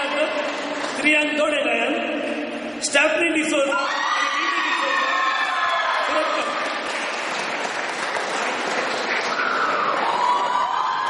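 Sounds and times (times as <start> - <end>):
audience applauding: 0.0 - 1.1, 5.2 - 11.0.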